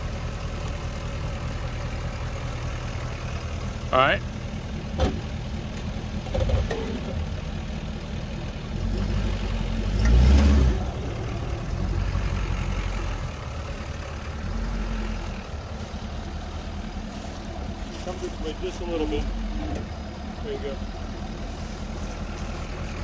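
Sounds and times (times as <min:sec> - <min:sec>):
pickup truck engine idling: 0:00.0 - 0:10.0, 0:10.7 - 0:23.0.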